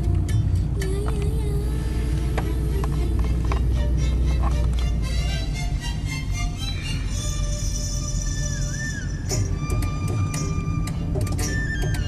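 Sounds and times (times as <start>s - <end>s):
car interior rumble: 0.0s - 12.0s
music with wavering held tone: 0.0s - 12.0s.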